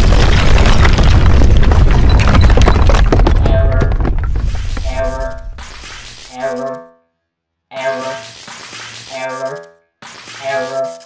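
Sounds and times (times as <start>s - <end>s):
explosion blast rumbling: 0.0s - 4.6s.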